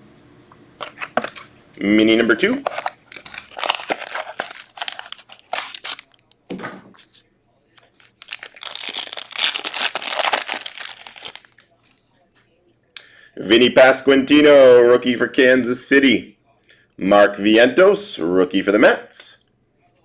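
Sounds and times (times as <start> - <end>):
plastic shrink-wrap crinkling: 2.6 - 6.2, 7.9 - 11.8.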